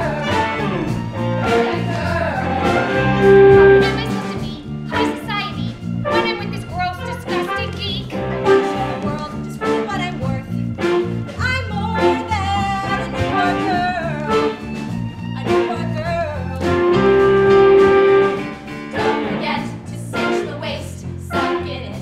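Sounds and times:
saxophones: 0:00.0 - 0:07.6, 0:11.9 - 0:19.6
drums: 0:00.0 - 0:22.0
live swing band playing: 0:00.0 - 0:22.0.

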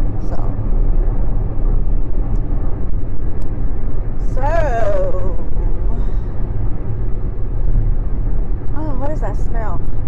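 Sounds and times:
car interior road and engine rumble: 0:00.0 - 0:10.0.

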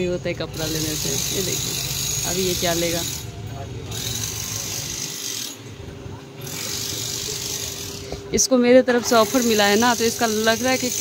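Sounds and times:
busy clothes shop background noise: 0:00.0 - 0:11.0.

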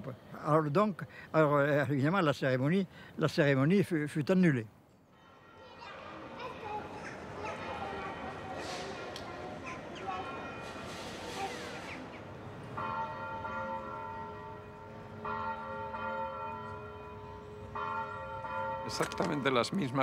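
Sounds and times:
street noise: 0:00.0 - 0:20.0
church bell tolling: 0:10.2 - 0:11.6, 0:12.7 - 0:20.0.

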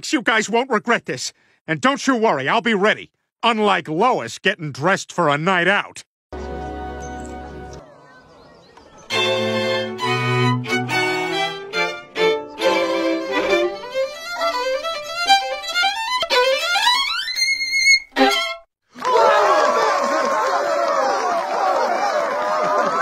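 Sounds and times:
string group playing: 0:09.0 - 0:18.7
violin solo rising scales: 0:09.1 - 0:18.6.

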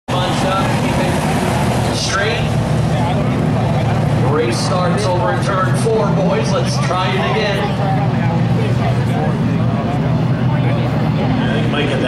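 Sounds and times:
race car engines droning: 0:00.1 - 0:12.0.

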